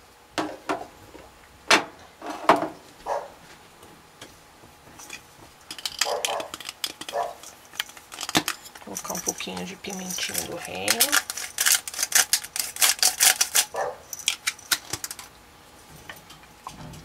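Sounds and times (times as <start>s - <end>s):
utensils clicking on ceramic pot: 5.1s - 15.3s.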